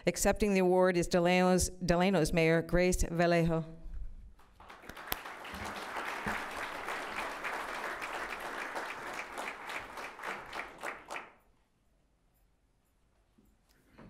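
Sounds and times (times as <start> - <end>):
audience applauding: 4.5 - 11.4.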